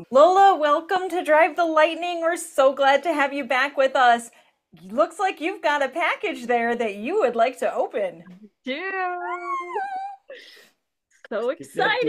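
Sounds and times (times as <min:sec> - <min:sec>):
woman's excited ooh: 0:09.2 - 0:10.3.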